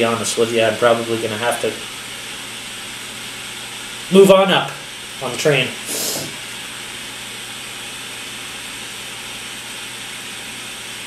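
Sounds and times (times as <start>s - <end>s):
butane torch hissing: 1.1s - 6.8s.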